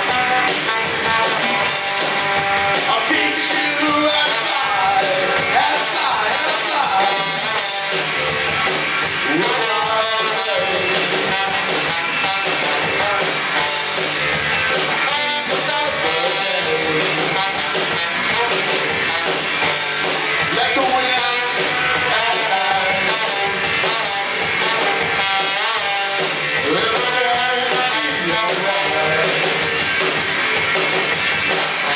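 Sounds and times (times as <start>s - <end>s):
drum kit: 0.0s - 31.9s
electric guitar: 0.0s - 31.9s
live rock band: 0.0s - 31.9s
trombone playing: 0.0s - 31.9s.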